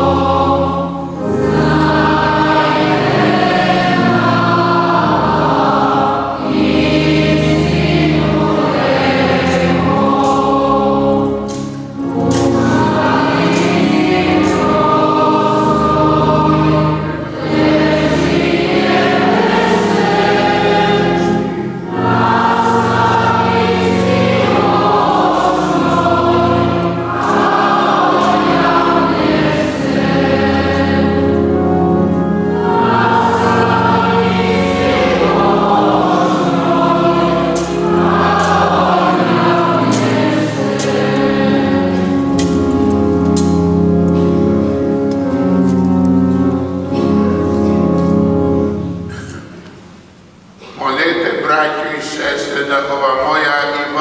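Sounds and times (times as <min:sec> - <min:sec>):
choir singing a hymn: 0:00.0 - 0:49.9, 0:50.6 - 0:54.0.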